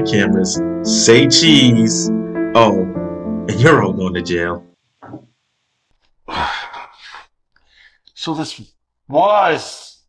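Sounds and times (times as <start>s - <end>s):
person sighing: 6.2s - 7.4s
short breath: 6.3s - 8.1s.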